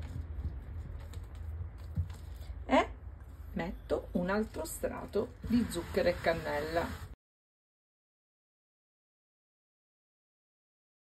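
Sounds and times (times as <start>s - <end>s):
hand tapping and rubbing pastry: 0.0s - 2.5s.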